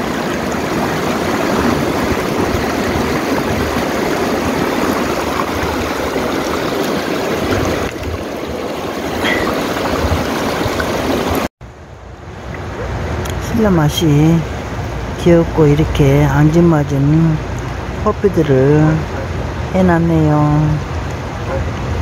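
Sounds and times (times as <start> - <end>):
stream water running over stones: 0.0 - 11.5.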